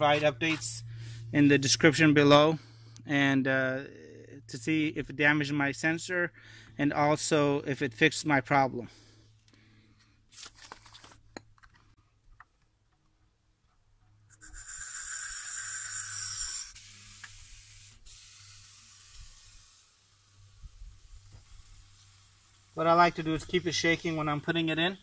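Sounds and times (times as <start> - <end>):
air hissing from tyre valve: 14.4 - 22.8.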